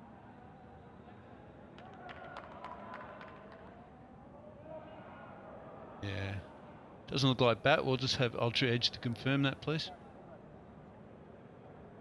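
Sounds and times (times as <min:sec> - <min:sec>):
faint outdoor ambience: 0:02.8 - 0:12.0.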